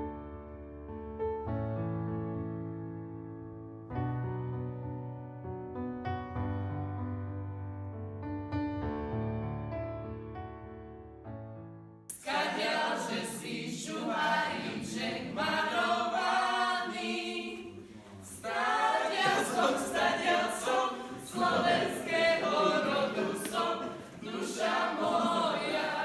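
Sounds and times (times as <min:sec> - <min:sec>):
group singing a cappella: 0:12.1 - 0:26.0.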